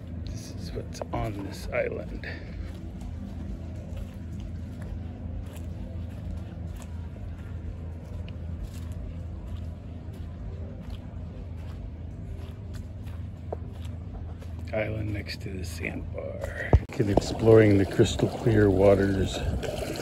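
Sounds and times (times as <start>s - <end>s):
steady low rumble: 0.0s - 20.0s
footsteps on dry pine needles: 0.1s - 18.6s.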